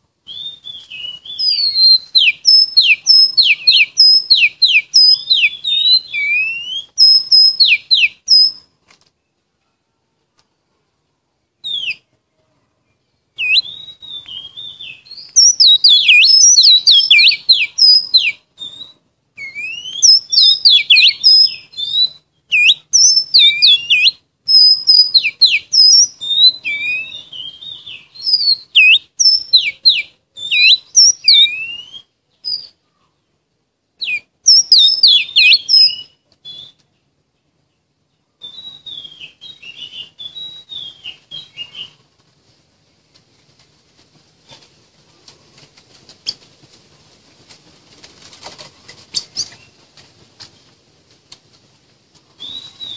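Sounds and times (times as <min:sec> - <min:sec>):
bird singing whistled notes: 0:00.2 - 0:08.7, 0:11.6 - 0:12.1, 0:13.0 - 0:32.8, 0:34.0 - 0:37.0, 0:38.4 - 0:42.0, 0:52.4 - 0:52.9.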